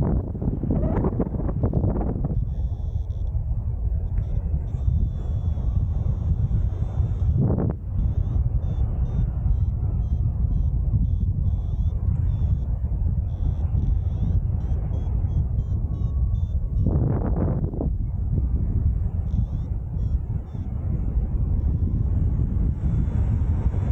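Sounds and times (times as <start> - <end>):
airflow rushing over microphone: 0.0 - 23.9
short high pitched beeps: 1.6 - 3.3, 4.2 - 7.4, 8.0 - 12.7, 13.3 - 17.0, 19.3 - 20.7.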